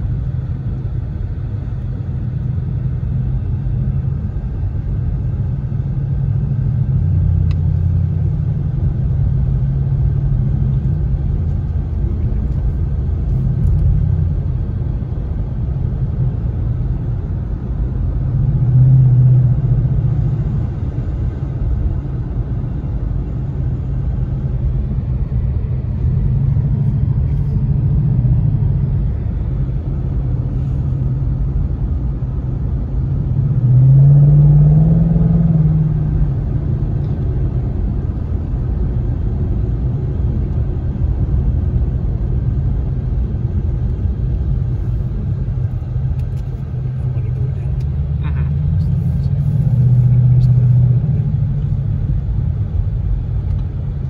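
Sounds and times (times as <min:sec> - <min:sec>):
car engine rumbling while driving: 0:00.0 - 0:54.0.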